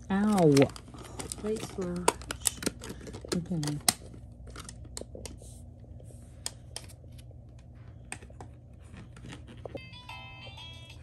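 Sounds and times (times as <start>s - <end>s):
toy playing electronic tune: 9.8s - 11.0s.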